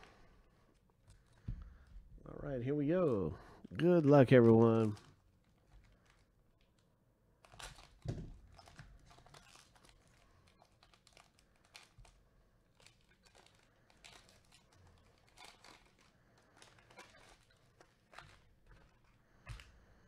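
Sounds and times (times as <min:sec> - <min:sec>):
foil wrapper crinkling: 0:03.0 - 0:20.0.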